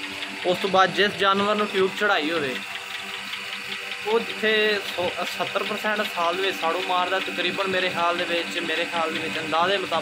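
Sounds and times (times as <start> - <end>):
mechanical hum: 0.0 - 10.0
man talking: 0.4 - 2.6, 4.0 - 10.0.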